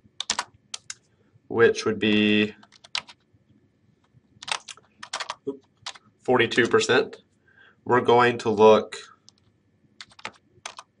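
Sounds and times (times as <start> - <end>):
computer keyboard keystrokes: 0.2 - 1.0, 2.6 - 3.2, 4.4 - 6.0, 9.2 - 11.0.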